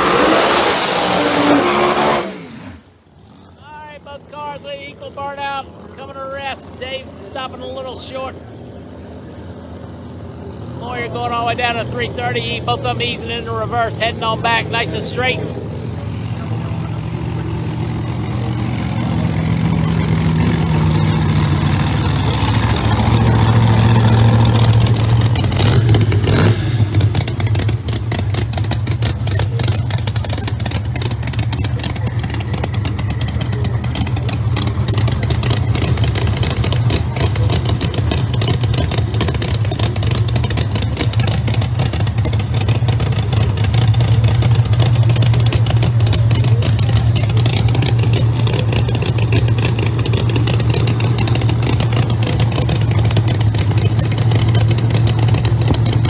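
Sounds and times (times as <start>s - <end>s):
supercharged engine idling: 1.4s - 56.0s.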